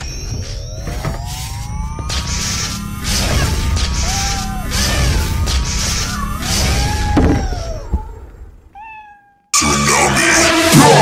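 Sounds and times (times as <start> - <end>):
cat meow: 6.5 - 9.5
loud music: 9.6 - 11.0.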